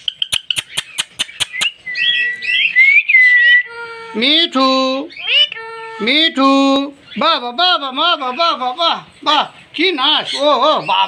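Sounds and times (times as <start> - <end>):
sharp clicks: 0.0 - 1.8
parakeet whistled chattering call: 0.0 - 3.7.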